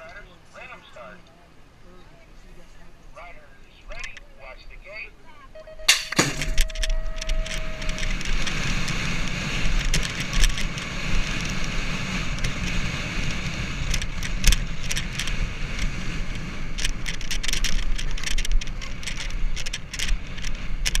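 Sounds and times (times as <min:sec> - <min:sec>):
tyres rolling on asphalt: 0:00.0 - 0:21.0
steady tone: 0:05.6 - 0:08.8
starting gate clang: 0:05.9 - 0:08.4
bike clicks and knocks: 0:05.9 - 0:11.7, 0:12.3 - 0:21.0
wind rush on helmet camera: 0:06.2 - 0:21.0.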